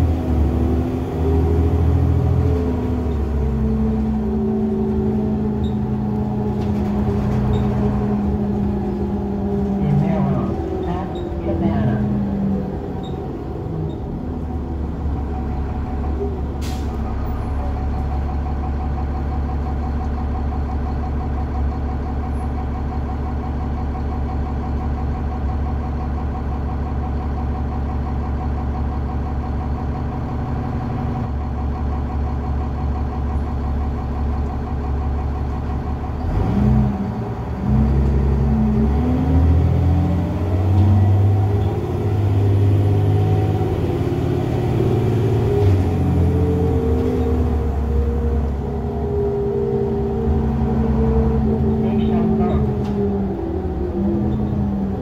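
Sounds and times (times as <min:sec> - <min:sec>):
bus diesel engine: 0:00.0 - 0:55.0.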